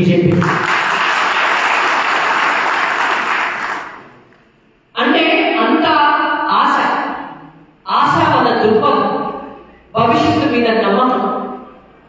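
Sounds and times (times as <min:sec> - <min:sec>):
audience applauding: 0:00.3 - 0:04.2.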